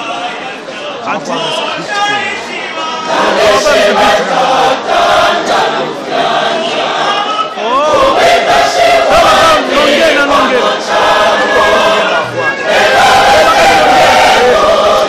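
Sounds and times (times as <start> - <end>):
crowd voices: 0.0 - 15.0
choir singing loudly: 2.1 - 15.0.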